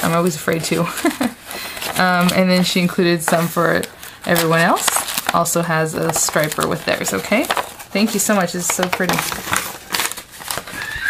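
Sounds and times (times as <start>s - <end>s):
packaging crinkling: 0.0s - 11.0s.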